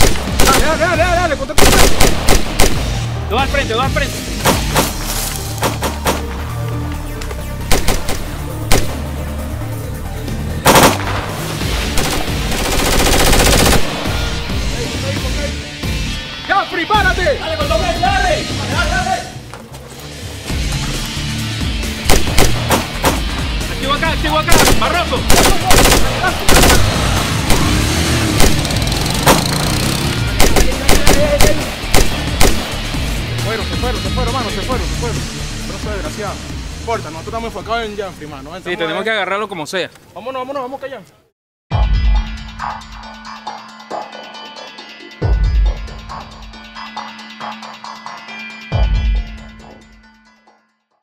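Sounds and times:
rifle gunfire: 0.0 - 0.8, 1.6 - 2.9, 7.7 - 9.0, 10.6 - 11.3, 12.0 - 14.1, 22.1 - 23.2, 24.5 - 27.7, 28.4 - 29.5, 30.4 - 32.8
background music: 0.0 - 39.8, 41.7 - 51.0.

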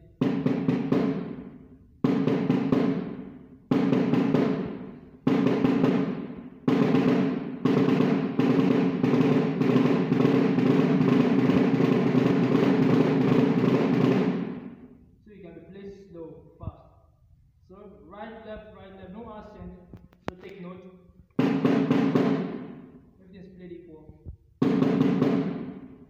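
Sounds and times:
snare drum strokes: 0.0 - 14.9, 21.4 - 23.0, 24.6 - 26.0.

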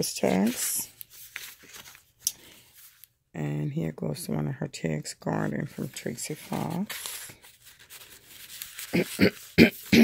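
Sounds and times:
paper rustling and sliding: 0.0 - 3.1, 5.8 - 9.9
sharp papery scrapes: 5.8 - 9.9.

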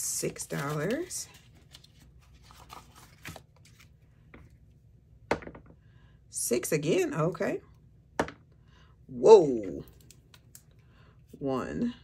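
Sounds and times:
paper money rustling: 0.2 - 3.9.

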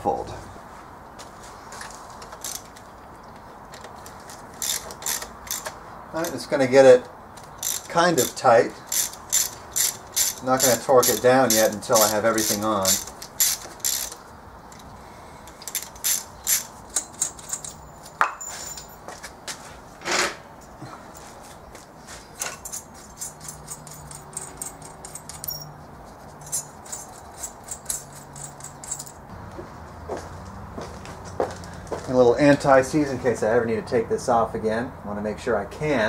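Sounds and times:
socket ratchet clicking: 3.7 - 6.4, 7.3 - 14.9, 15.5 - 17.8, 22.7 - 25.7
metal clinks: 15.5 - 19.1, 22.4 - 29.3.

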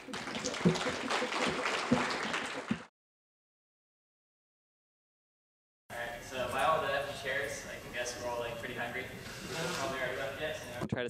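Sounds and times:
audience applauding: 0.0 - 2.9.

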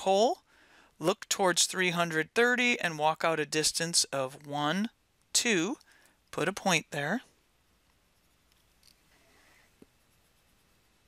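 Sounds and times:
faint scratch: 8.1 - 11.0.

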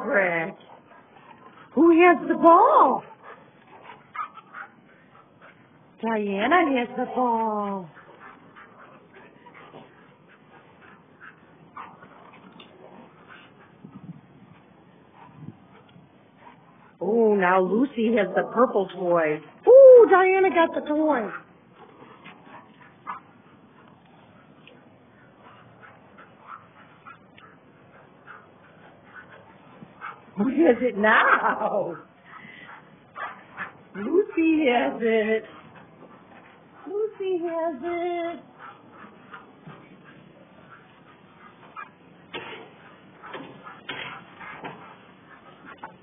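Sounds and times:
dogs scuffling and playing: 0.0 - 46.0
dogs whimpering and yipping: 0.6 - 5.7, 24.6 - 42.1.

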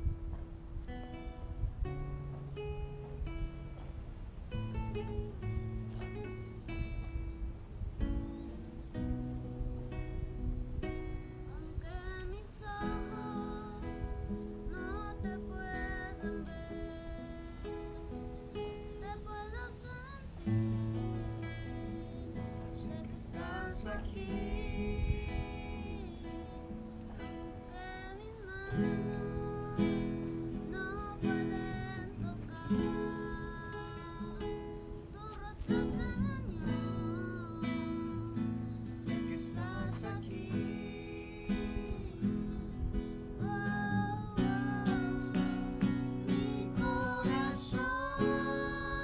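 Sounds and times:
classical guitar fingerpicking: 0.0 - 49.0.

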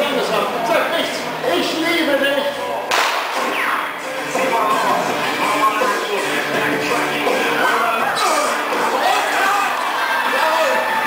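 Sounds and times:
sharp crack: 2.9 - 3.7
amplified voice: 3.4 - 9.6.

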